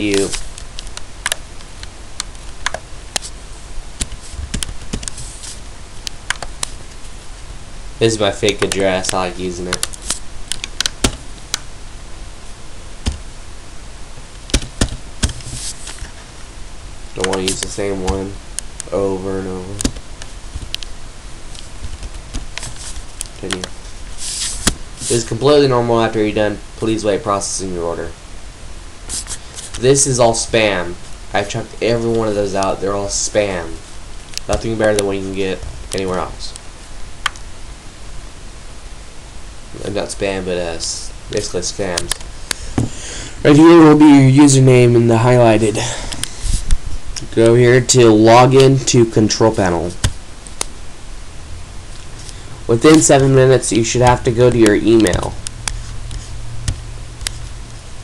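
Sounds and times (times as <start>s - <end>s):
man speaking: 0.0s - 0.4s, 8.0s - 9.9s, 17.2s - 19.9s, 23.4s - 23.7s, 25.1s - 28.2s, 29.8s - 33.8s, 34.5s - 36.6s, 39.7s - 42.2s, 43.4s - 46.1s, 47.2s - 50.0s, 52.6s - 55.4s
microphone hiss and hum: 0.0s - 58.0s.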